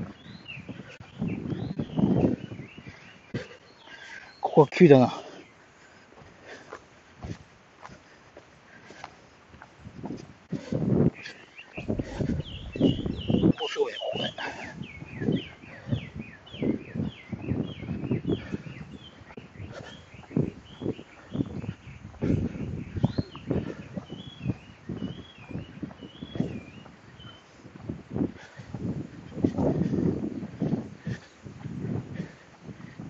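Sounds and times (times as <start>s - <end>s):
birds chirping: 0.0s - 33.0s
footsteps on asphalt: 5.2s - 33.0s.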